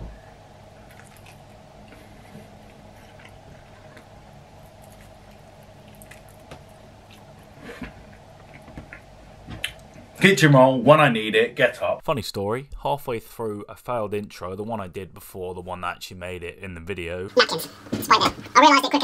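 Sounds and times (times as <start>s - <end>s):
faint steady hum: 0.0s - 19.0s
person chewing: 0.8s - 10.0s.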